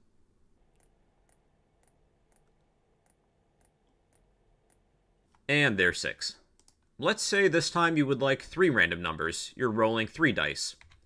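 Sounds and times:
faint computer mouse clicks: 0:06.6 - 0:06.9.

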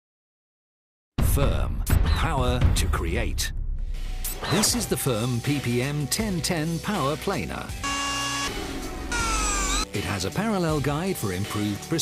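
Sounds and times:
faint background music: 0:04.1 - 0:07.9, 0:08.5 - 0:12.0.

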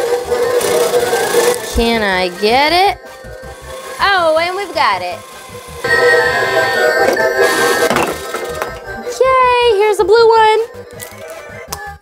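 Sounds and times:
tinny electronic circus tune: 0:00.0 - 0:11.6.

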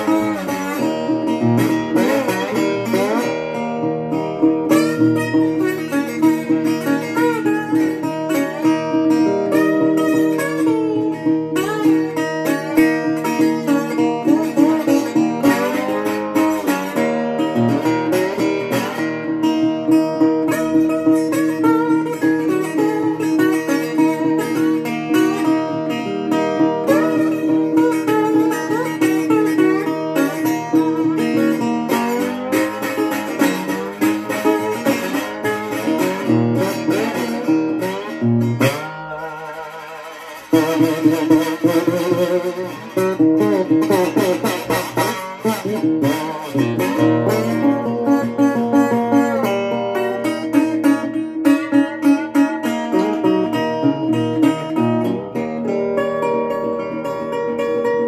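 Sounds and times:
slide guitar blues fingerpicking: 0:00.0 - 0:58.0.

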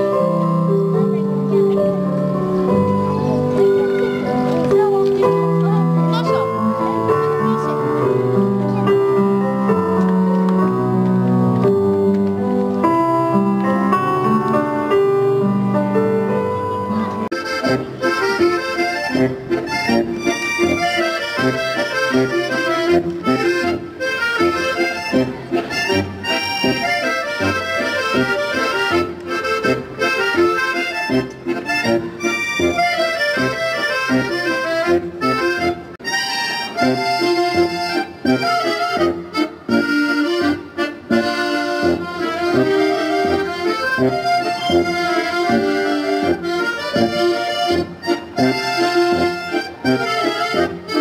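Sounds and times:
accordion orchestra playing: 0:00.0 - 0:51.0.

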